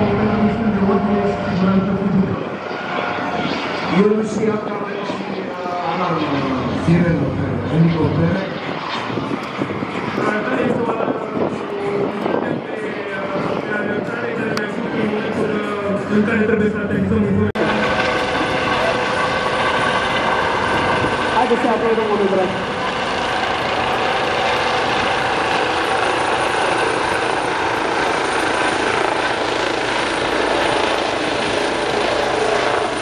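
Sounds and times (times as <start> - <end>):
helicopter rotor and turbine noise: 0.0 - 33.0.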